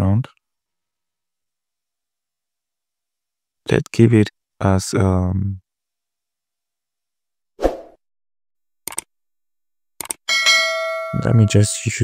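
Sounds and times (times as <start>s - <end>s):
short clicks: 8.8s - 9.1s, 10.0s - 10.2s
bell-like ding ringing: 10.3s - 12.0s.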